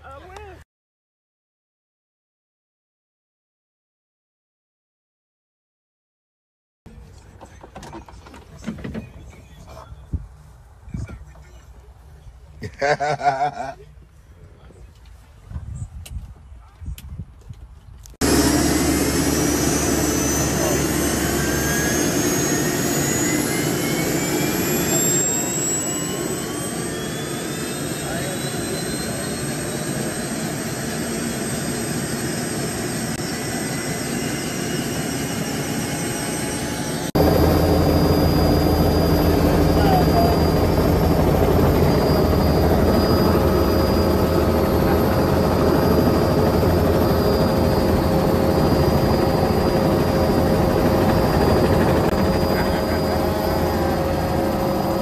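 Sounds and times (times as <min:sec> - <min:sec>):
helicopter engine whine starting: 0:18.2 - 0:55.0
helicopter running: 0:18.2 - 0:55.0.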